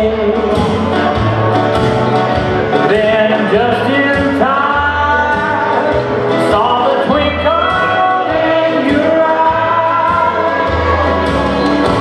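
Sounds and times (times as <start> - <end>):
man singing into microphone: 0.0 - 1.4, 2.7 - 12.0
electric guitar: 0.0 - 12.0
steady bass line: 0.0 - 12.0.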